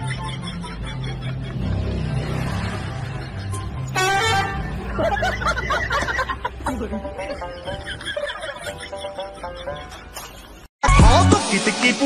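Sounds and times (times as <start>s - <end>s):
horn honk: 3.8s - 5.0s.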